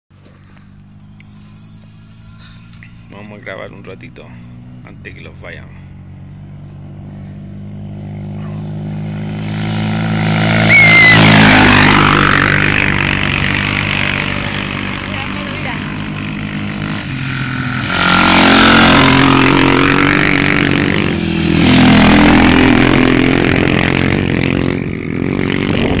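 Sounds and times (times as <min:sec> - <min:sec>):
racing motorcycles passing: 0:00.2 - 0:26.0.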